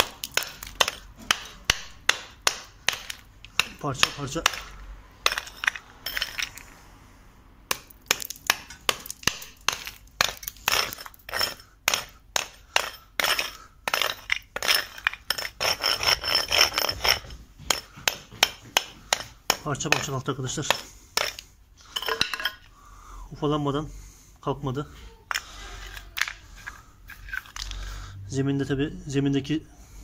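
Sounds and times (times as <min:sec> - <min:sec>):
hatchet chipping mortar: 0:00.0 - 0:06.6, 0:07.7 - 0:22.6
mortar chips clinking: 0:00.0 - 0:06.7, 0:07.7 - 0:22.6, 0:25.3 - 0:27.8.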